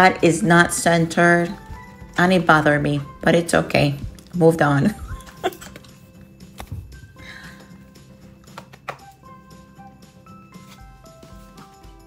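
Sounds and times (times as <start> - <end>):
soft background music: 0.0 - 12.0
paper pages rustling: 10.5 - 11.7.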